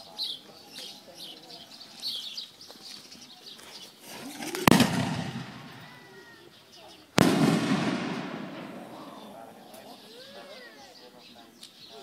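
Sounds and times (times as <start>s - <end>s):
firework echo: 4.1s - 6.4s, 7.2s - 9.6s
loud firework bang: 4.6s - 6.0s, 7.2s - 9.1s.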